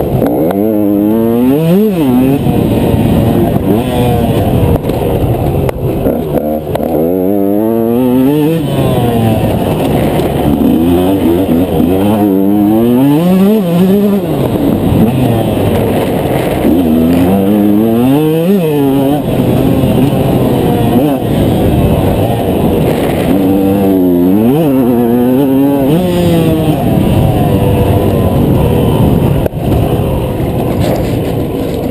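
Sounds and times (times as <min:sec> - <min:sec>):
two-stroke motorcycle engine revving: 0:00.0 - 0:31.9.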